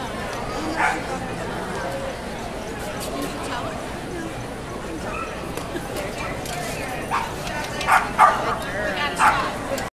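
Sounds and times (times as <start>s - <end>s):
crowd chatter: 0.0s - 9.9s
dog barking: 7.9s - 8.4s, 9.2s - 9.4s.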